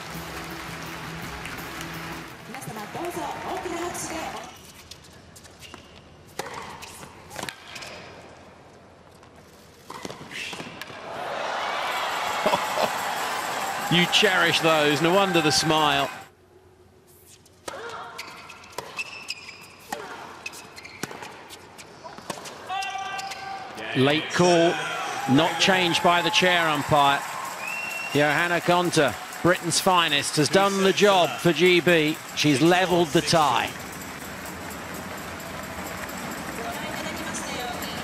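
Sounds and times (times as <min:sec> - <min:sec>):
crowd applauding: 0:00.0 - 0:04.5, 0:11.2 - 0:16.3, 0:24.3 - 0:38.0
shoes squeaking on court: 0:03.7 - 0:08.4, 0:17.1 - 0:23.8
racket hitting tennis ball: 0:06.3 - 0:07.9.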